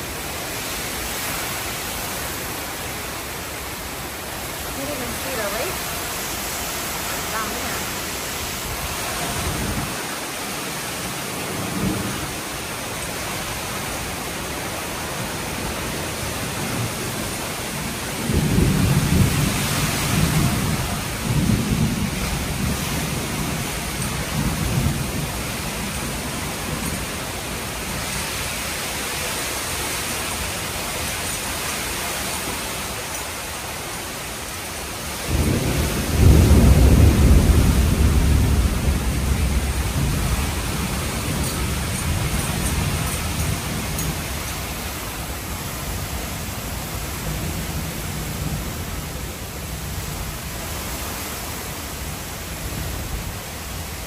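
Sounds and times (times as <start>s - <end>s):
heavy rain pouring: 0.0s - 54.0s
thunder rumbling: 3.7s - 28.5s, 35.0s - 54.0s.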